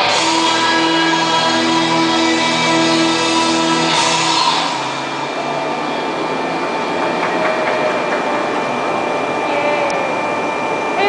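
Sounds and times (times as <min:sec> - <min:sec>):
background song: 0:00.0 - 0:05.4
steady background hum and hiss: 0:04.7 - 0:11.0.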